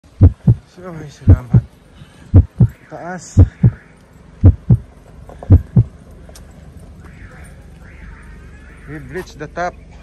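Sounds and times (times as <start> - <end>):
low steady hum: 0.1 - 0.7, 1.3 - 2.8, 4.4 - 8.0
heavy footstep thumps: 0.2 - 0.6, 1.3 - 1.7, 2.4 - 2.7, 4.5 - 4.8, 5.5 - 5.9.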